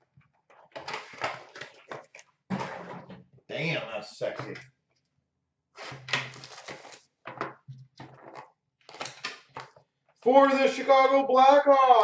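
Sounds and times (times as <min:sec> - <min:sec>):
cardboard rustling and scraping: 0:05.8 - 0:07.4.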